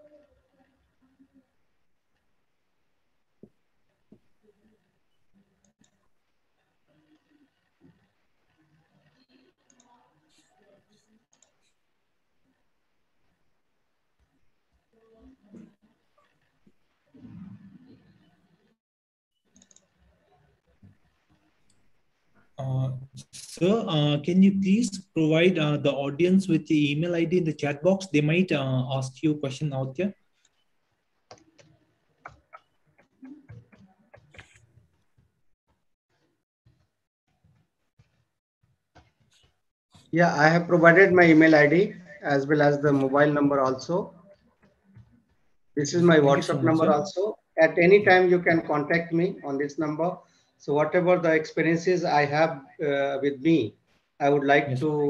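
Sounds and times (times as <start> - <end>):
faint muffled voice: 0.0 - 1.6.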